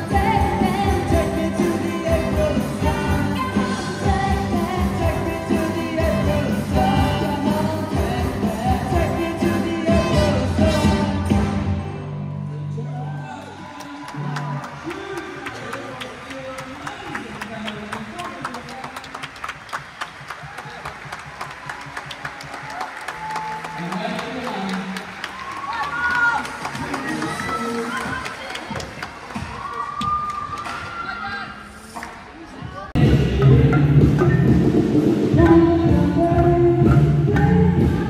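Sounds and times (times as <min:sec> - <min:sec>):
group clapping and tapping rhythm: 0:13.7 - 0:30.7
marimba band playing: 0:33.0 - 0:38.0
steady low beat: 0:33.0 - 0:38.0.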